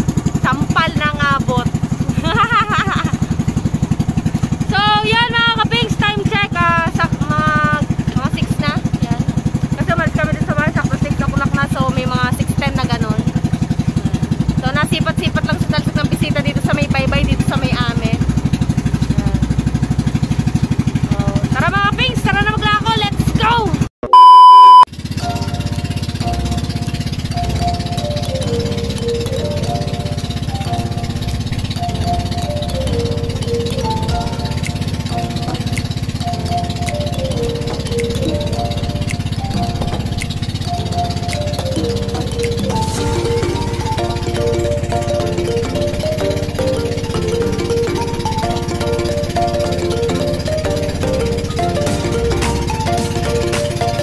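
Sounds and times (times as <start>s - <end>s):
voices: 0.4s - 3.2s, 4.7s - 13.4s, 14.6s - 18.3s, 19.0s - 19.6s, 21.0s - 23.8s
loud steady beep: 24.0s - 24.9s
background music: 25.2s - 54.0s.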